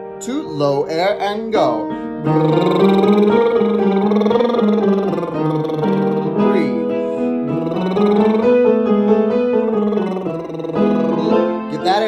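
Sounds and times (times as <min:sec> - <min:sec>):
keyboard playing stepwise notes: 0:00.0 - 0:12.0
lip trill vocal warm-up: 0:00.9 - 0:08.7, 0:09.5 - 0:12.0
breath: 0:01.9 - 0:02.2, 0:06.9 - 0:07.4.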